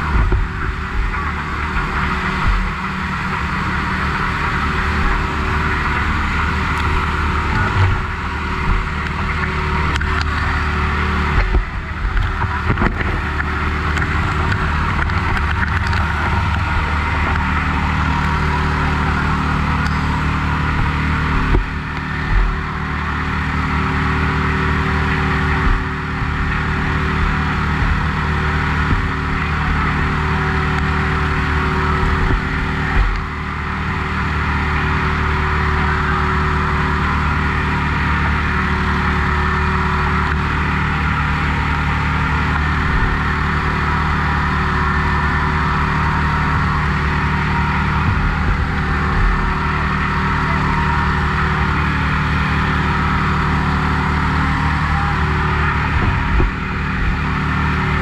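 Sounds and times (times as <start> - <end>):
engine running at high speed: 0.0 - 58.0.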